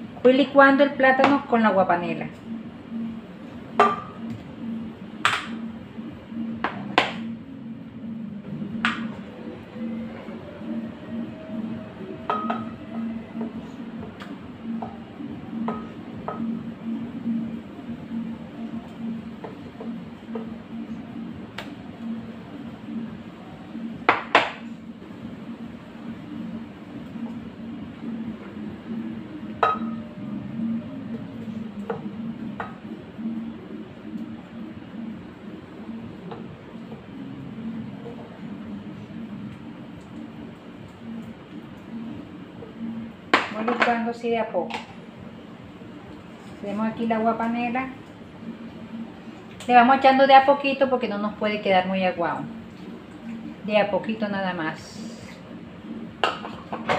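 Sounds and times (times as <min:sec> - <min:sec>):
steady low hum: 0:00.0 - 0:56.9.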